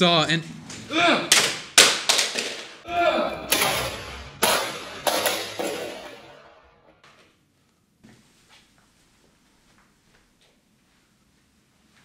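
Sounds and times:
plastic timer crashing against wall: 0:01.3 - 0:02.8, 0:03.5 - 0:06.4.

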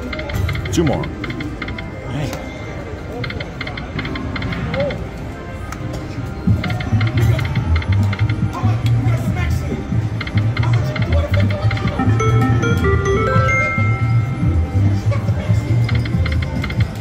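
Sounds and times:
casino background music: 0:00.0 - 0:17.0
slot machine reels spinning: 0:10.0 - 0:17.0.

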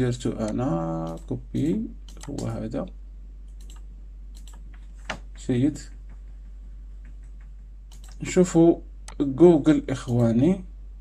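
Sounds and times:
computer keys clicking: 0:00.4 - 0:02.6, 0:03.5 - 0:05.2, 0:07.0 - 0:08.3, 0:09.9 - 0:10.5.

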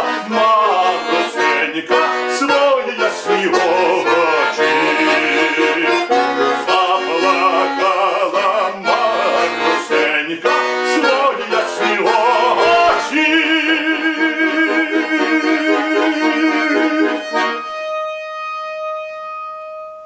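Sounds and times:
man singing: 0:00.0 - 0:17.4
button accordion playing folk song: 0:00.0 - 0:20.0.

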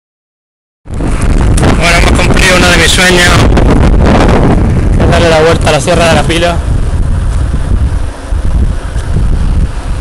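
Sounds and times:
wind buffeting microphone: 0:00.9 - 0:10.0.

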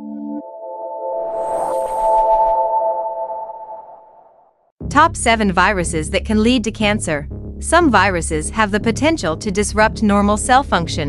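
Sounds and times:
synthesized chord: 0:00.0 - 0:06.6
soft swoosh: 0:01.2 - 0:03.8.

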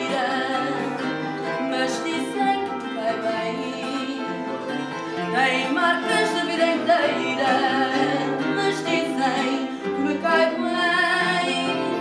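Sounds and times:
guitars playing: 0:00.0 - 0:12.0
woman singing with vibrato: 0:00.0 - 0:12.0.

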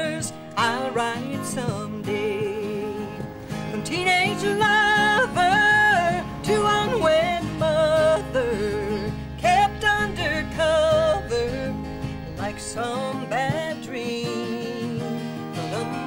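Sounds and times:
instrumental accompaniment: 0:00.0 - 0:16.0
woman singing country song: 0:00.0 - 0:16.0.

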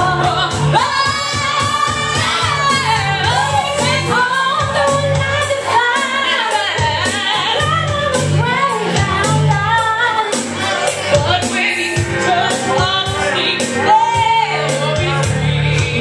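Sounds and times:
amplified backing music with bass: 0:00.0 - 0:16.0
women singing into microphones: 0:00.0 - 0:16.0.

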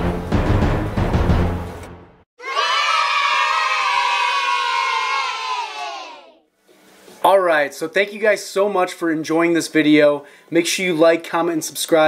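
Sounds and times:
crowd of children cheering: 0:02.4 - 0:06.4.

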